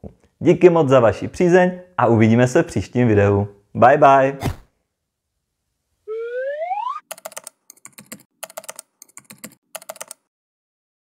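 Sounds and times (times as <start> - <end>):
short rising tone: 6.1 - 7.0
keyboard typing clicks: 7.1 - 10.3.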